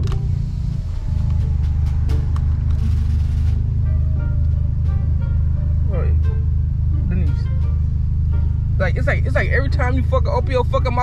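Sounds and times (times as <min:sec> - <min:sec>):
car cabin rumble: 0:00.0 - 0:11.0
faint music: 0:00.0 - 0:11.0.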